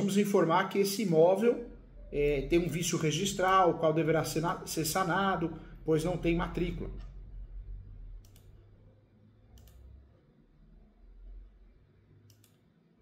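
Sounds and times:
low hum: 1.5 - 12.5
faint sharp clicks: 9.6 - 9.9, 12.3 - 12.6.

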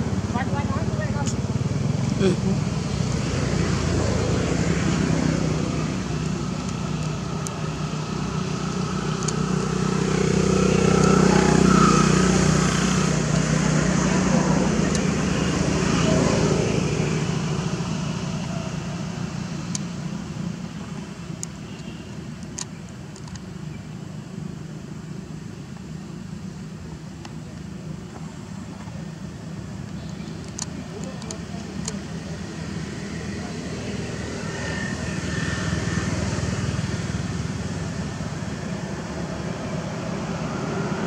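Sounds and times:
passing motor vehicle engine hum: 0.0 - 41.0
faint clicks: 29.8 - 32.0.

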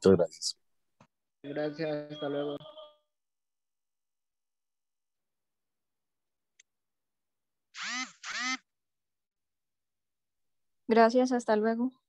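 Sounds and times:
person speaking over video call: 0.0 - 0.6.

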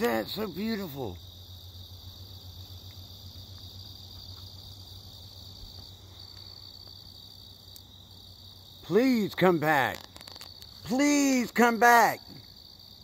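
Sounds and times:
night insects chirping: 0.0 - 13.0.

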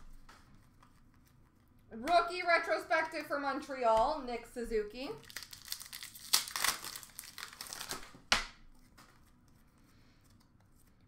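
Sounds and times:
foil wrapper crinkling and tearing: 5.1 - 8.3.

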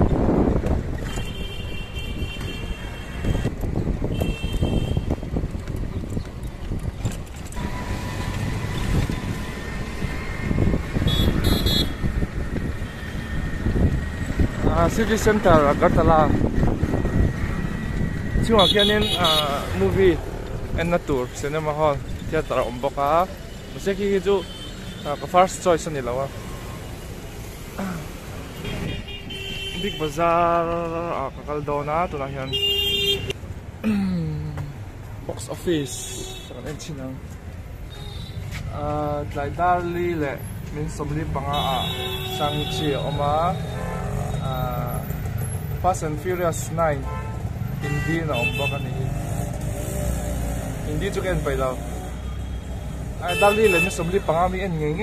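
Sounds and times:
engine and road rumble: 0.0 - 55.0
street traffic: 0.0 - 55.0
vehicle horn toot: 1.1 - 3.5, 4.1 - 5.1, 11.0 - 12.0, 18.6 - 19.6, 28.6 - 30.1, 32.5 - 33.4, 41.5 - 44.4, 47.0 - 48.9, 53.2 - 54.3.

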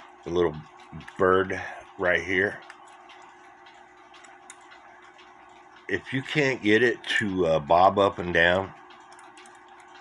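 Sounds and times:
clock ticking: 0.0 - 10.0
faint steady hum: 0.0 - 10.0.

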